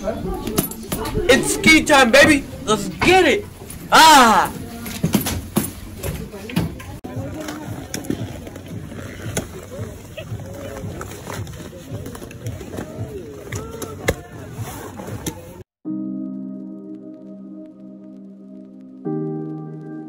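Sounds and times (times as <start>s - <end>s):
ski boots clicking and knocking: 4.8s - 15.6s.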